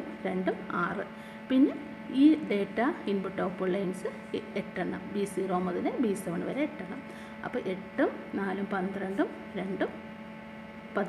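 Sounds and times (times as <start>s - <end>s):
woman speaking: 0.0s - 10.0s
steady hum of faint tones: 0.0s - 11.0s.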